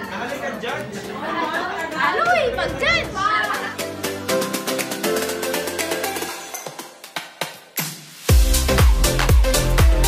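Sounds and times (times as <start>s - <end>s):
chatter of voices: 0.0s - 4.0s.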